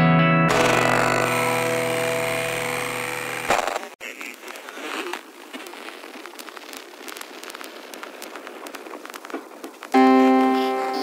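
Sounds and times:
electronic music held chord: 10.0 - 11.0.

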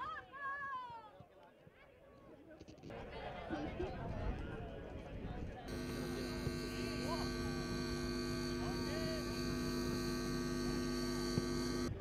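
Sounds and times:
electrical hum with high buzz: 5.7 - 12.0.

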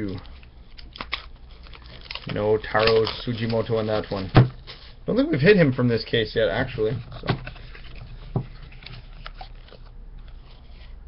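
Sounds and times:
card packs crackling and rustling: 0.0 - 5.6, 6.4 - 11.0
low steady hum: 0.0 - 11.0.

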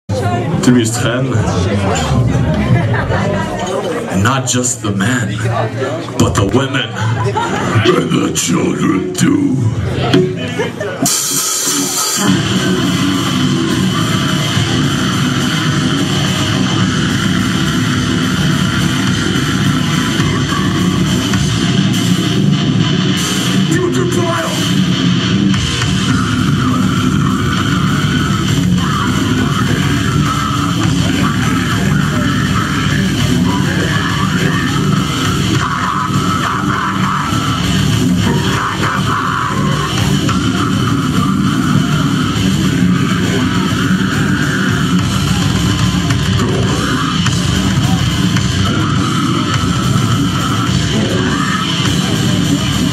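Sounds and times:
distorted electric guitars: 0.0 - 5.5, 6.1 - 52.9
bass guitar: 0.0 - 52.9
drum kit: 0.1 - 4.4, 9.2 - 52.9.

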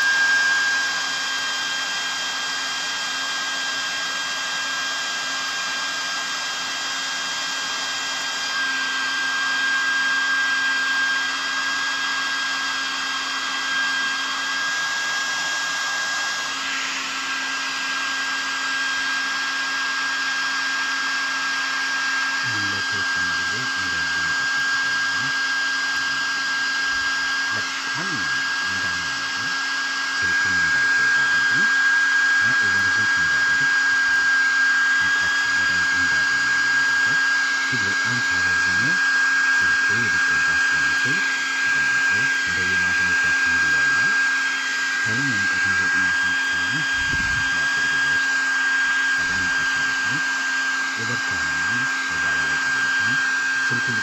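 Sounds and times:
hair dryer running: 0.0 - 54.0.

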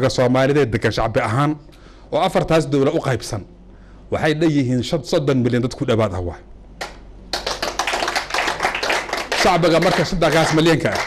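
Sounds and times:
audience applauding: 7.3 - 11.0.

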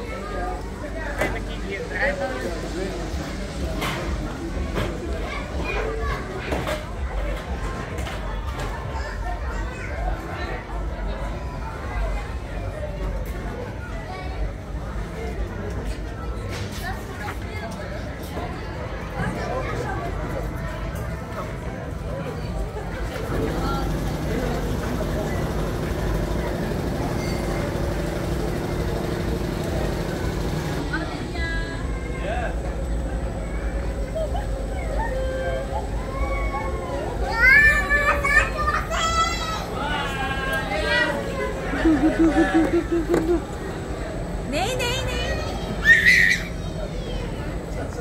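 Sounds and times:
children calling and chattering: 0.0 - 48.0
fairground ride machinery humming: 0.0 - 48.0
people talking: 0.0 - 48.0.

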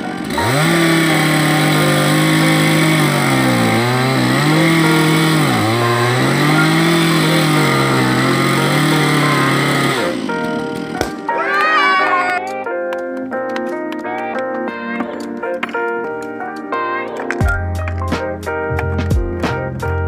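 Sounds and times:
chainsaw cutting through tree: 0.0 - 11.8.

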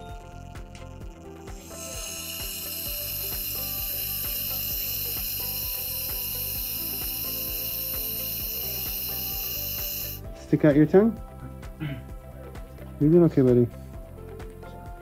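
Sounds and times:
background music with beat: 0.0 - 15.0
suction tube hissing: 0.6 - 10.3.

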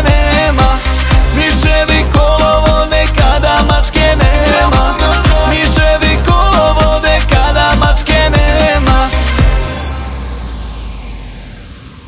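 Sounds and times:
noise wash: 0.0 - 12.0
falling sweep: 6.5 - 12.0
deep low rumble: 9.1 - 12.0.

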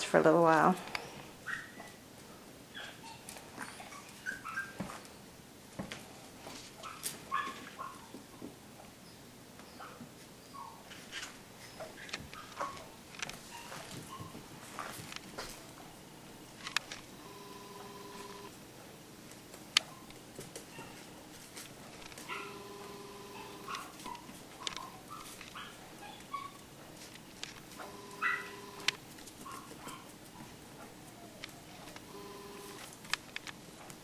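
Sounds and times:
dogs whimpering and yipping: 1.0 - 2.0, 2.7 - 5.1, 6.8 - 8.1, 9.7 - 10.9, 11.6 - 14.4, 20.7 - 21.1, 22.2 - 26.6, 27.8 - 28.8, 29.5 - 32.0
toys on tile floor: 16.6 - 18.5, 20.9 - 25.6, 27.0 - 29.9, 31.4 - 33.9.

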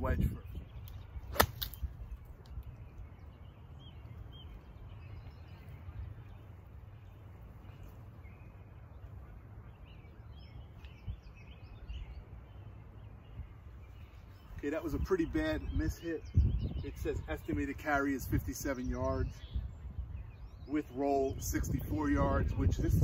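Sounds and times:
wind rumble on microphone: 0.0 - 8.4, 9.6 - 23.0
faint bird chirps: 0.2 - 21.3.

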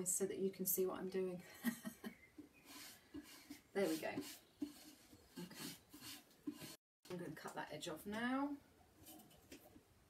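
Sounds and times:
brush rubbing on paper: 2.6 - 6.8.

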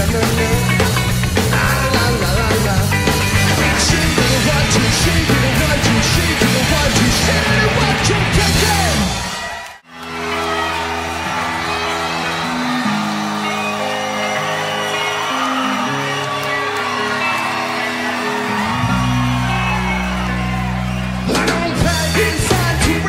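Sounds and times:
rock band playing: 0.0 - 23.0.

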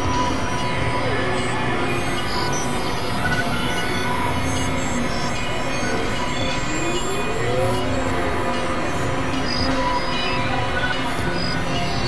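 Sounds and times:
synthesizer noise music: 0.0 - 12.0.

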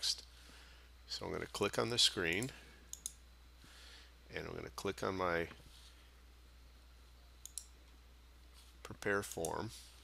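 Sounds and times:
low electrical hum: 0.0 - 10.0
computer mouse clicks: 2.3 - 3.2, 7.4 - 7.7.

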